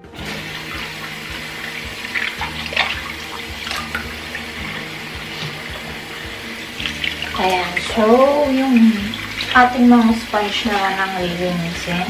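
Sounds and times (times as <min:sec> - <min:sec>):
faucet running into basin: 0:00.0 - 0:12.0
water splashes from rinsing: 0:00.0 - 0:12.0.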